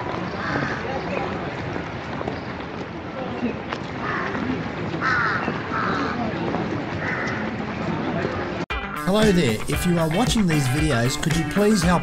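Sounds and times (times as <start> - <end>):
outdoor background noise: 0.0 - 8.7
crow cawing: 0.4 - 0.9, 4.0 - 6.3, 7.0 - 7.5.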